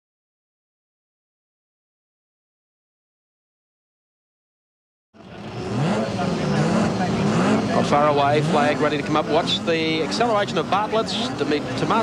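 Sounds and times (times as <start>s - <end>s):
racing car engines revving: 5.2s - 12.0s.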